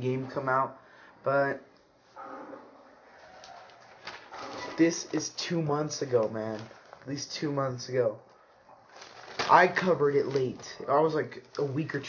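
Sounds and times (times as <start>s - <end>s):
person speaking: 0.0s - 1.7s, 4.4s - 8.3s, 9.3s - 12.0s
newspaper pages rustling: 3.2s - 7.5s, 8.9s - 12.0s.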